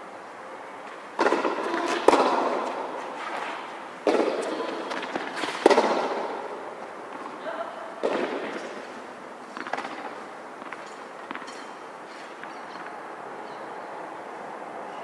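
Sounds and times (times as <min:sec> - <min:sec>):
tennis ball hits echoing: 0:01.2 - 0:03.0, 0:04.0 - 0:07.4, 0:08.0 - 0:08.8.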